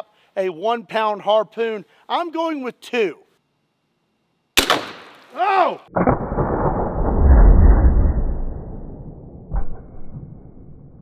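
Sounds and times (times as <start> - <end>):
harpoon gun firing: 4.6 - 5.3.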